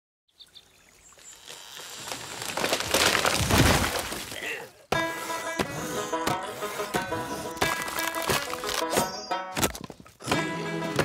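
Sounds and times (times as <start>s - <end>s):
tree cracking and splintering: 1.2s - 4.5s, 7.6s - 9.8s
tree crashing into river: 2.0s - 4.4s.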